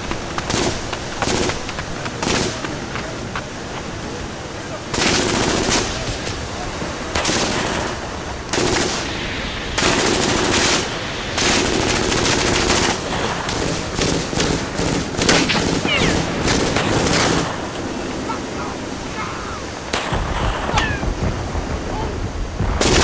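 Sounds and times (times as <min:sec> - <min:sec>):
background battle gunfire: 0:00.0 - 0:02.9, 0:04.9 - 0:17.9, 0:19.9 - 0:23.0
machine-gun bursts: 0:00.5 - 0:02.6, 0:04.9 - 0:06.0, 0:08.5 - 0:09.0, 0:09.8 - 0:17.6.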